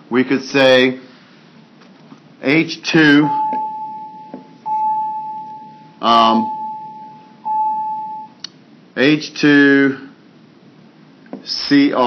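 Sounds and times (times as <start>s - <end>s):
electronic intercom chime: 3.2s - 8.4s.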